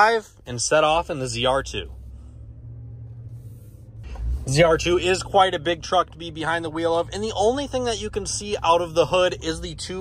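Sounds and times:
truck engine rumble: 0.0s - 10.0s.

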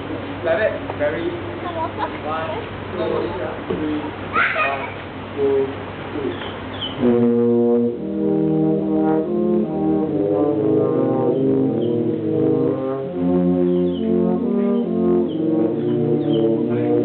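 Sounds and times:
tuba and euphonium quartet: 6.7s - 17.0s.

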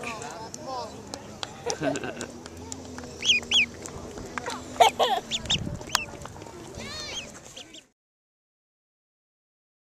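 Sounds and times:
duckling peeping: 3.0s - 3.9s, 4.5s - 7.9s.

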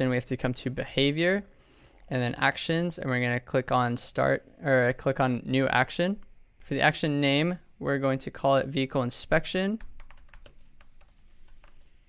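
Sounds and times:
keyboard typing: 9.8s - 12.0s.

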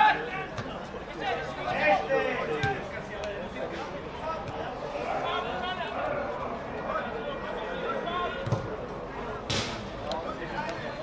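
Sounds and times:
spectators chattering: 0.0s - 11.0s.

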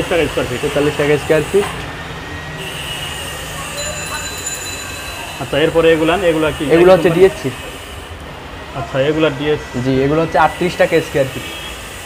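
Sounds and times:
faint distant voices: 2.8s - 7.9s.

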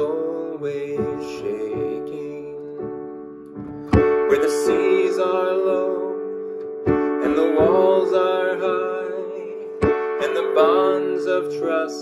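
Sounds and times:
man singing: 0.0s - 3.0s, 4.1s - 12.0s
piano-like chords: 0.0s - 12.0s.

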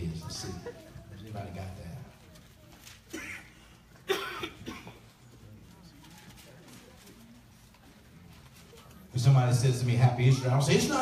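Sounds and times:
person coughing: 3.1s - 5.0s.

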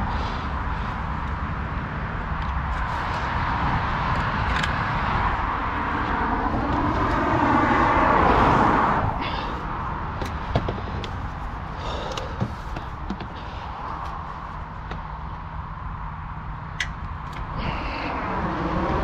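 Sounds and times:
road vehicle passing: 0.0s - 19.0s
steady low rumble: 0.0s - 19.0s.

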